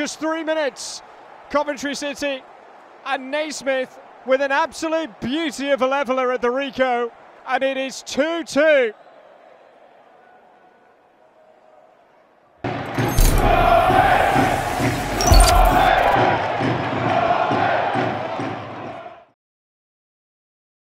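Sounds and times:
crowd cheering and chanting: 0.0s - 19.4s
faint stadium crowd noise: 0.0s - 19.4s.

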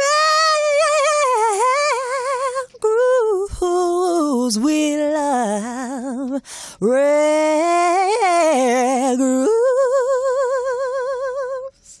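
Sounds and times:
woman singing without words: 0.0s - 12.0s.

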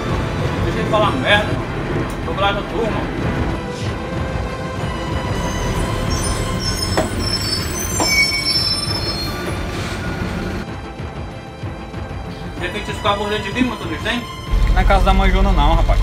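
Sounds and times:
background music: 0.0s - 16.0s
high-pitched squeals: 5.2s - 10.2s.

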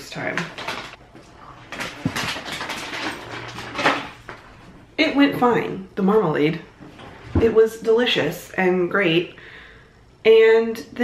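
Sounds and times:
objects rustling and knocking: 0.0s - 5.8s.

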